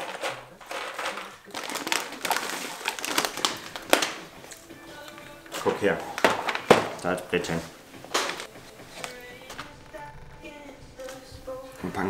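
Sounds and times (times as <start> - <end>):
plastic packaging crinkling: 0.0 - 9.8.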